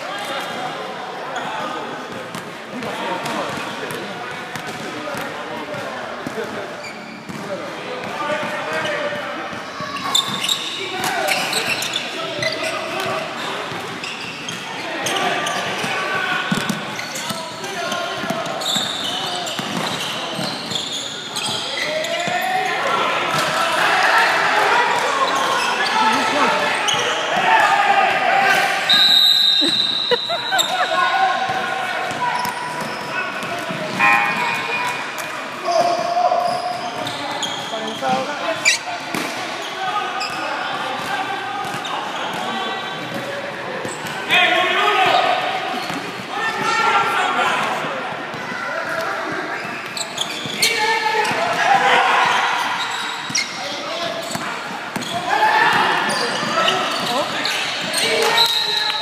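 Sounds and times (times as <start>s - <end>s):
spectators shouting and chatting: 0.0s - 59.0s
basketball bouncing on court: 54.2s - 55.2s.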